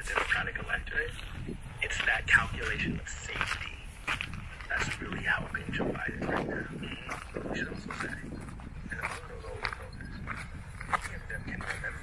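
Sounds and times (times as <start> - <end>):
indistinct talking: 0.0 - 12.0
low rumble of wind: 0.0 - 12.0.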